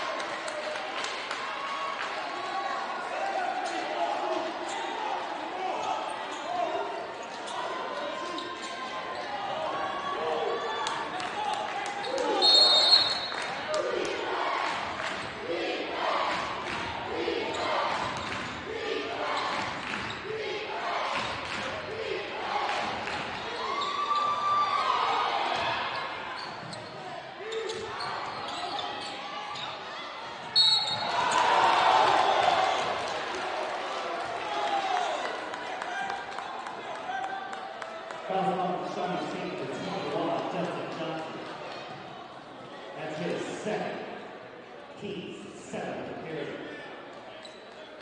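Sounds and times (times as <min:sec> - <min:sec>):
voices echoing in hall: 0:00.0 - 0:48.0
sneakers squeaking: 0:05.7 - 0:10.1, 0:11.9 - 0:13.5, 0:17.5 - 0:18.6, 0:23.1 - 0:31.5, 0:47.3 - 0:48.0
referee's whistle blasts: 0:12.3 - 0:13.4, 0:30.5 - 0:31.2.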